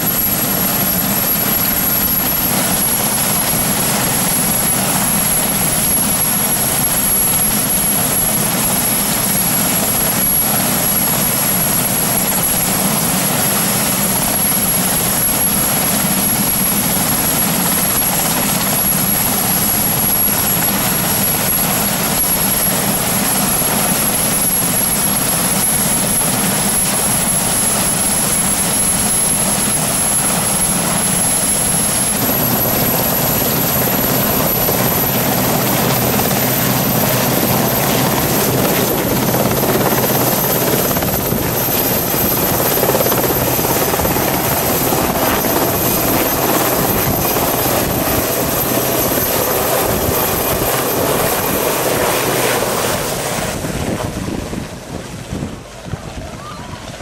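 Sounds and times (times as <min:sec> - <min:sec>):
helicopter engines and rotor: 0:00.0 - 0:57.0
high turbine whine: 0:00.0 - 0:57.0.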